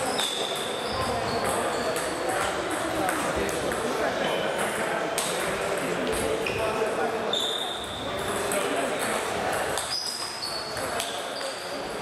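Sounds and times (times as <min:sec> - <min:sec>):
sports hall noise: 0:00.0 - 0:12.0
table tennis balls clicking: 0:00.1 - 0:06.4, 0:08.1 - 0:11.6.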